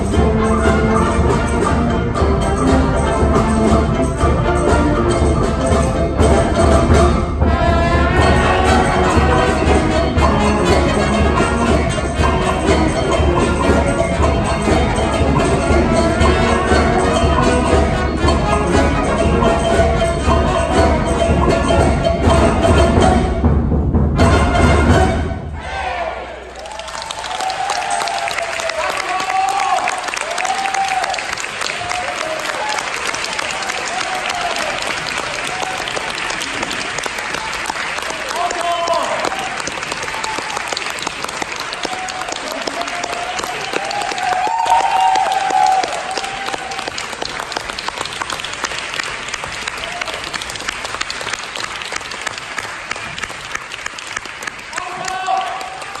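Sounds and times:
audience applauding: 26.4 - 56.0.

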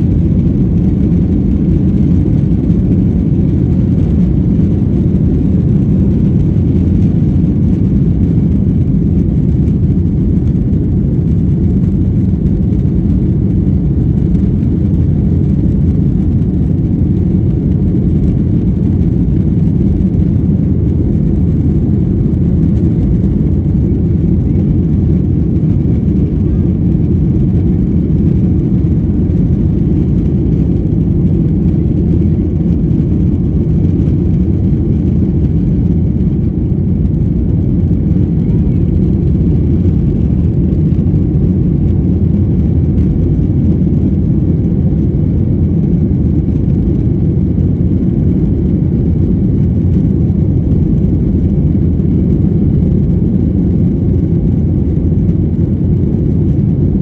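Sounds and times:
jet engines at takeoff thrust: 0.0 - 57.0.

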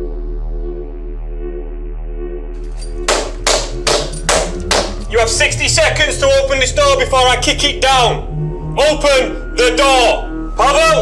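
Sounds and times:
low droning music: 0.0 - 11.0
heavy bangs on a door: 3.1 - 5.0.

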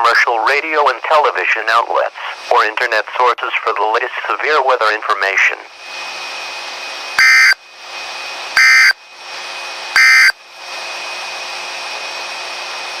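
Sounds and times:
radio hiss: 0.0 - 5.7
digital data bursts: 7.2 - 7.6, 8.6 - 8.9, 10.0 - 10.3.

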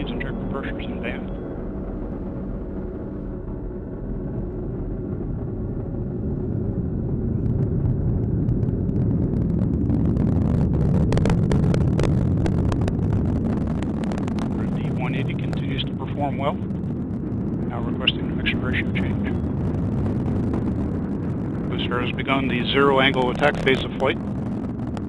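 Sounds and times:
rocket engine rumble with crackling: 0.0 - 25.0.

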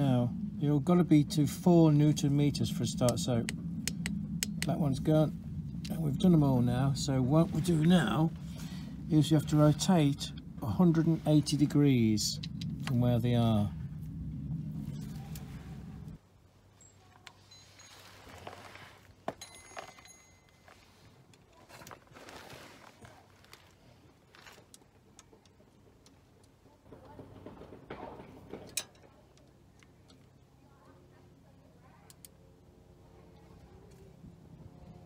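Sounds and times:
low hum: 0.0 - 35.0.

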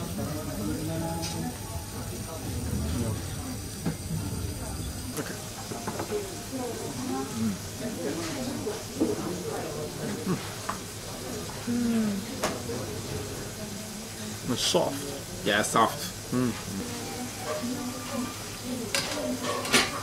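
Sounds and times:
quiet indistinct talking: 0.0 - 20.0.

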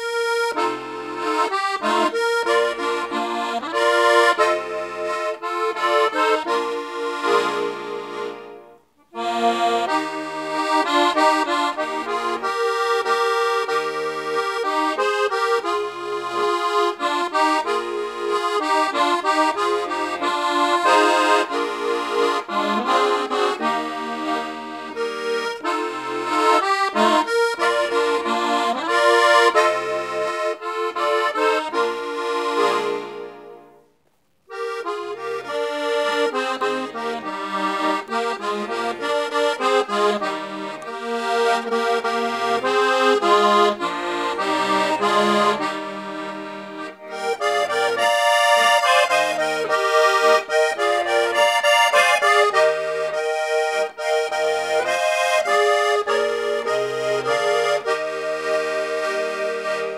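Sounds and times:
piano accordion melody: 0.0 - 59.9.

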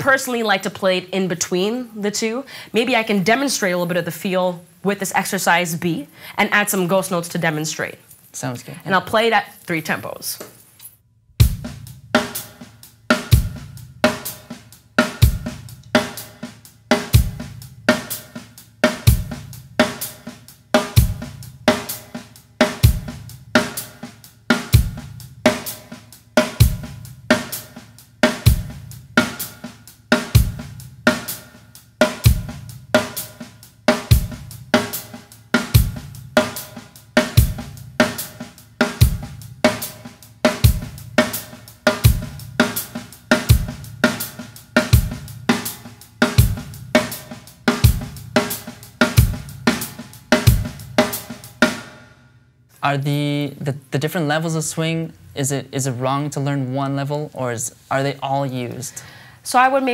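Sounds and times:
kick drum: 11.4 - 11.8.

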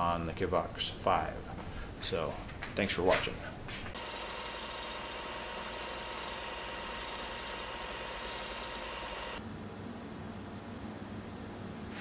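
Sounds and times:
sander grinding metal: 4.0 - 9.4.

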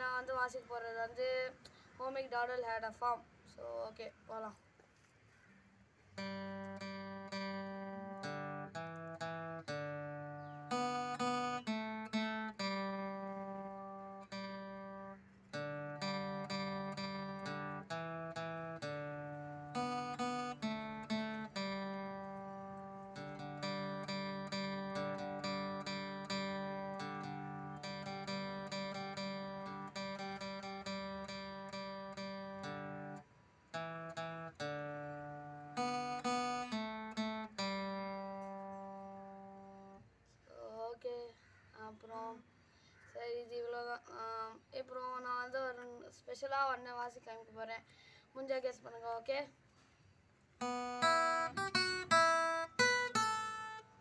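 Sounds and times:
acoustic guitar picking and strumming: 6.2 - 40.0, 50.6 - 54.0.

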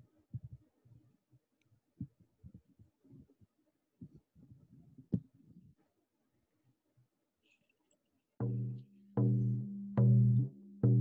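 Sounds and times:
drum strokes with low ringing tone: 8.4 - 11.0.

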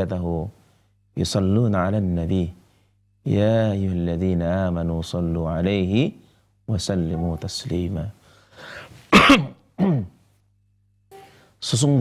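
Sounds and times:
man coughing: 9.1 - 10.2.

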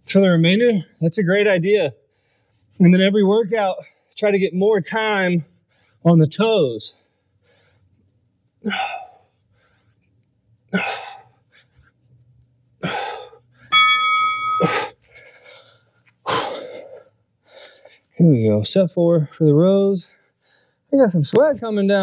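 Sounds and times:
timer electronic tone: 13.7 - 14.9.

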